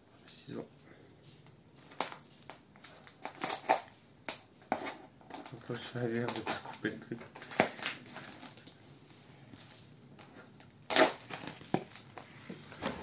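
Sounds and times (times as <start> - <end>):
scissors cutting packing tape: 3.1 - 8.3, 10.9 - 12.1.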